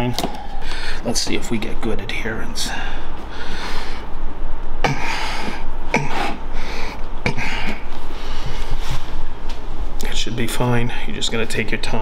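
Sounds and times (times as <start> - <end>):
rubbing and rustling: 7.8 - 10.0.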